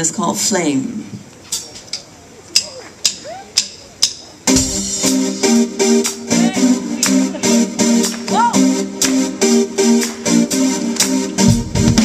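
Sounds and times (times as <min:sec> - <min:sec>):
smooth jazz band playing: 0:04.4 - 0:12.0.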